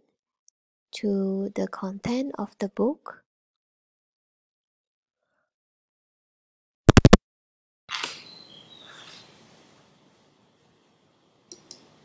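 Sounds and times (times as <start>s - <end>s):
sharp loud clicks: 6.9s - 7.2s.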